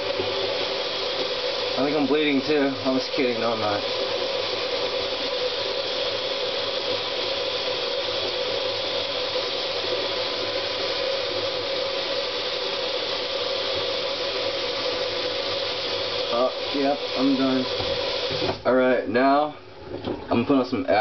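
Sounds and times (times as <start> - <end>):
steady hiss: 0.0 - 19.7.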